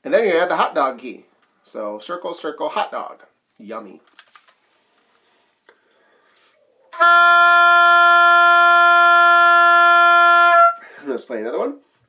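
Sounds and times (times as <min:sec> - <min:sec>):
oboe playing long note: 0:06.9 - 0:10.9.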